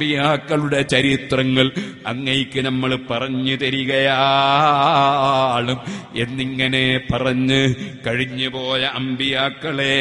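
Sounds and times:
man chanting verse: 0.0s - 10.0s.

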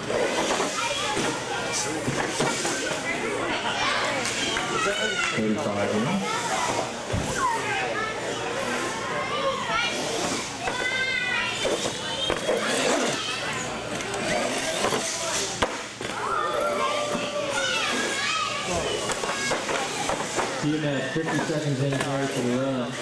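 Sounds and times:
crowd chattering and calling out: 0.0s - 23.0s.

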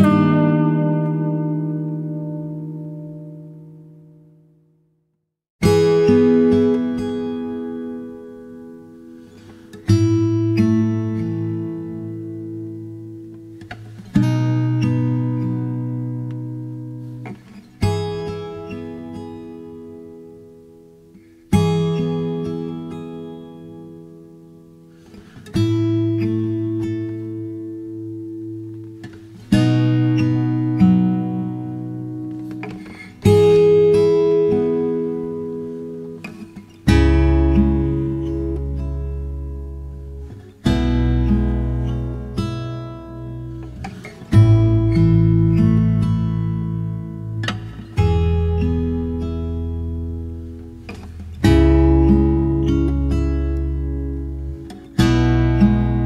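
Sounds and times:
acoustic guitar chords ringing: 0.0s - 56.0s.

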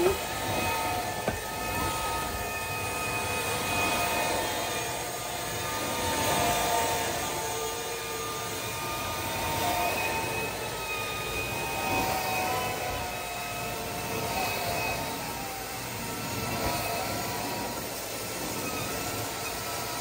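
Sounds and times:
vacuum suction roar: 0.0s - 20.0s.

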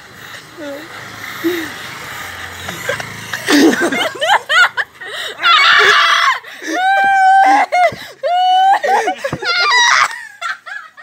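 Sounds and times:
people laughing hard: 1.4s - 11.0s.

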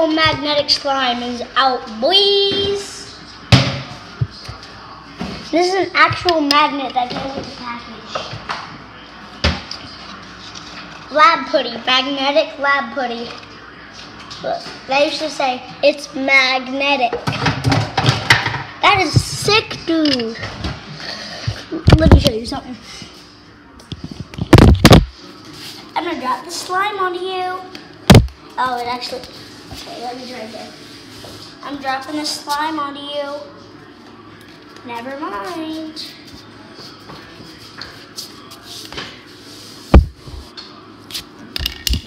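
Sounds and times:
knocks and rubbing on microphone: 24.0s - 25.1s, 39.9s - 40.5s.

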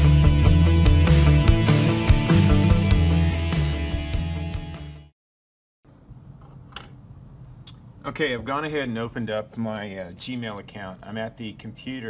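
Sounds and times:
music track: 0.0s - 5.1s.

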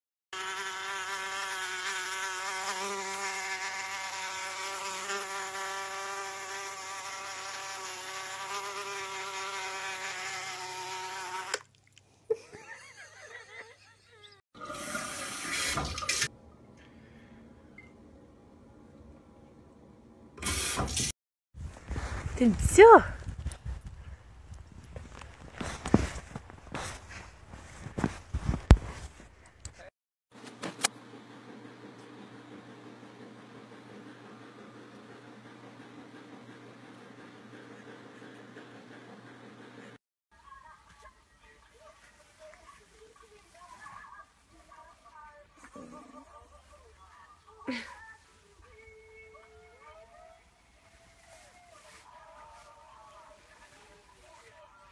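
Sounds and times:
buzzing fly sound effect: 0.4s - 11.6s
gush of running water: 14.6s - 16.3s.

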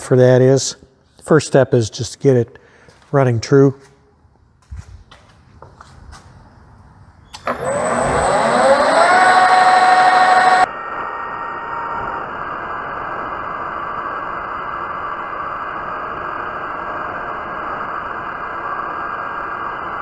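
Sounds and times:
lathe motor whining: 7.3s - 13.4s.

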